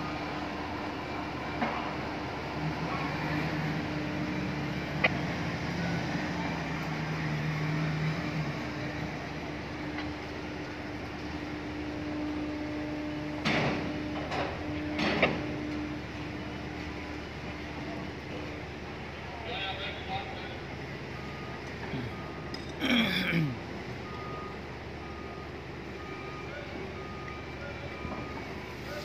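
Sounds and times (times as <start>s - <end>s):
crane machinery humming: 0.0s - 29.0s.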